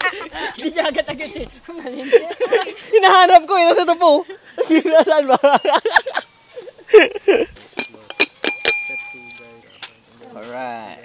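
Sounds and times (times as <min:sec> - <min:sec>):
glass clinking: 0:07.8 - 0:09.5.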